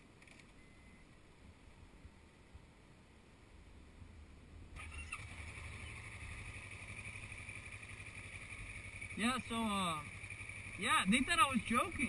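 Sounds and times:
vehicle engine running: 4.8 - 12.0.

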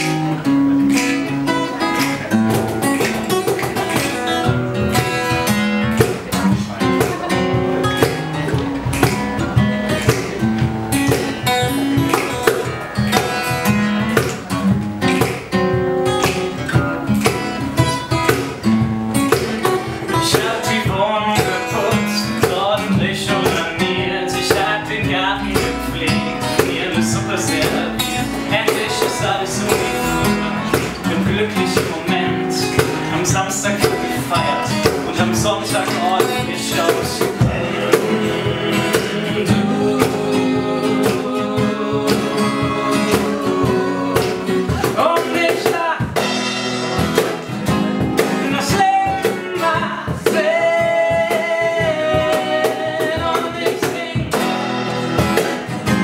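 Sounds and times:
acoustic guitars strumming: 0.0 - 56.0
cajon beat: 0.0 - 56.0.

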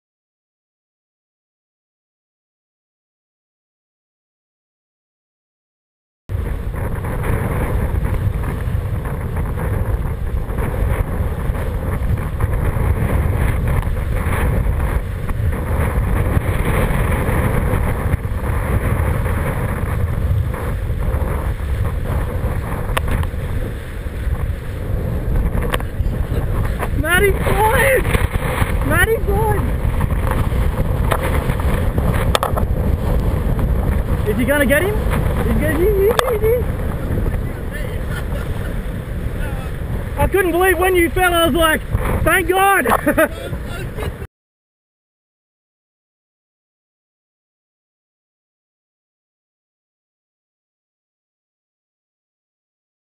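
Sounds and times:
wind rushing over microphone: 6.3 - 44.3
person calling out: 27.0 - 28.1, 35.5 - 36.7.

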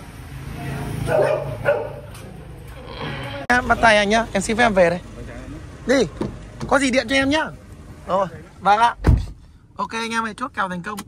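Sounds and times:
dog barking: 1.0 - 2.2.

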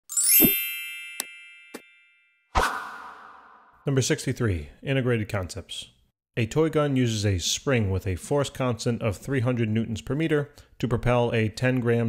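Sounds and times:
bright bell-like chime: 0.0 - 2.5.

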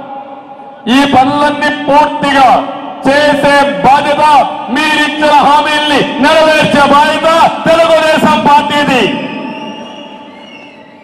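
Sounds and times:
man's voice over public address: 0.0 - 9.5.

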